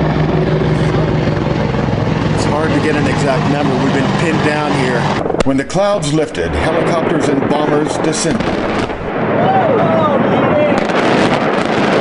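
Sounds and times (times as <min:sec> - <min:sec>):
helicopter rotor and engine drone: 0:00.0 - 0:09.4.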